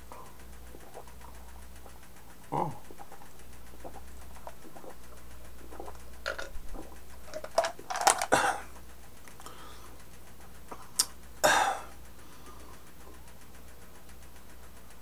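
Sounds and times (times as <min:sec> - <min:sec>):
man gulping soda: 0:00.1 - 0:09.6, 0:10.7 - 0:12.0
swallows and wet mouth clicks: 0:00.2 - 0:07.2, 0:10.7 - 0:11.2.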